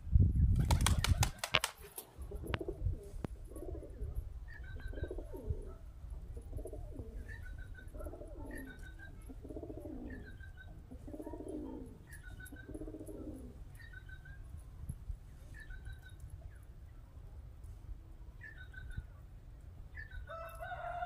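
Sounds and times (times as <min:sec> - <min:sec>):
pigeons cooing: 0:02.3 - 0:14.3.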